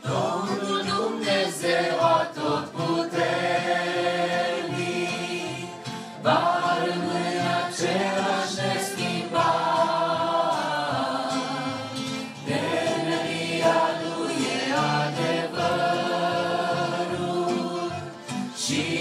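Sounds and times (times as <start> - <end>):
group singing in harmony: 0.0 - 19.0.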